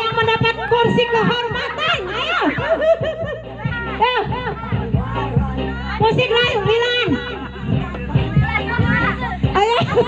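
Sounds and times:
music playing: 0.0s - 10.0s
people shouting excitedly: 0.1s - 7.3s.

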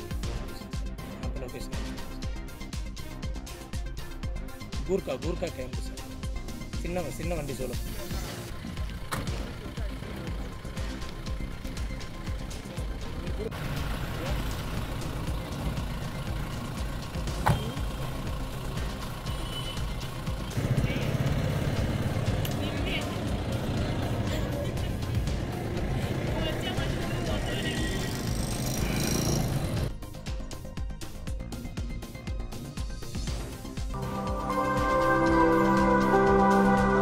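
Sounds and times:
background music: 0.0s - 37.0s
vehicle noise: 6.0s - 30.0s
people's voices: 20.6s - 29.8s.

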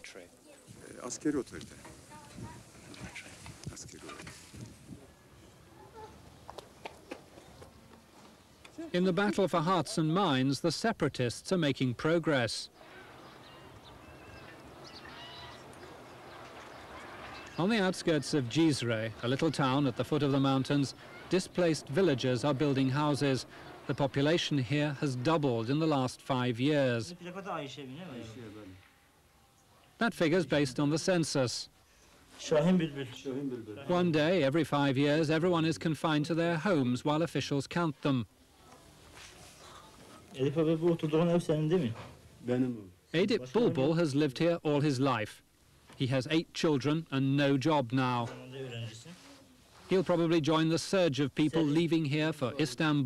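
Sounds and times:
faint animal sounds: 5.1s - 6.3s, 12.8s - 18.4s, 20.9s - 21.4s
man speaking: 8.8s - 12.7s, 17.6s - 28.8s, 32.4s - 38.3s, 40.3s - 45.4s, 46.0s - 49.2s, 49.9s - 53.0s.

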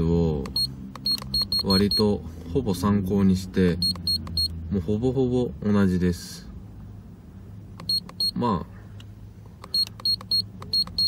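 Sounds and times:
short high beeps: 0.5s - 2.0s, 3.8s - 4.5s, 7.8s - 8.4s, 9.6s - 11.0s
button clicks: 7.8s - 8.3s.

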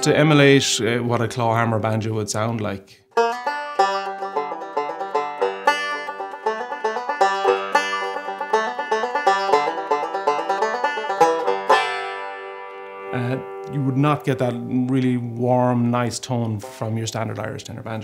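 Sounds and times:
banjo picking: 0.0s - 18.0s.

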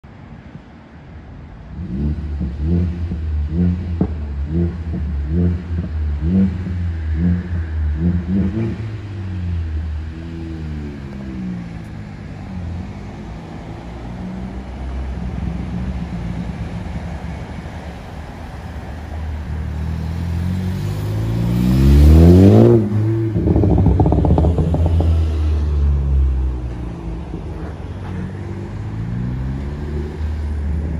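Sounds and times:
exhaust crackle: 18.5s - 28.4s
car engine revving past: 19.6s - 30.9s.

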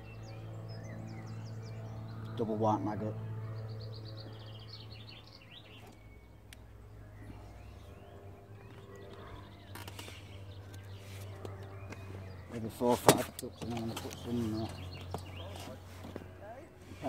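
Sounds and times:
steady low hum: 0.0s - 17.0s
small bird chirping: 3.5s - 16.2s.

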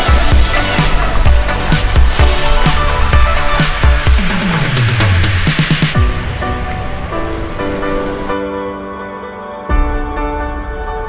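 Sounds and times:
steady wash of noise: 0.0s - 8.8s
soft ambient music: 0.0s - 11.0s.

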